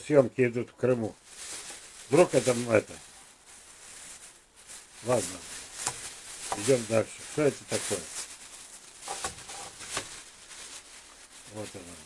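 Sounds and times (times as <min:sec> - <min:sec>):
plastic bag rustling: 0:00.8 - 0:12.0.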